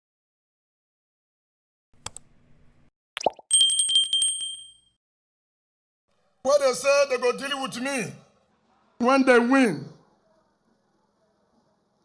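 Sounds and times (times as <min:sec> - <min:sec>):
click: 0:02.0 - 0:02.3
notification bell ring: 0:03.5 - 0:05.0.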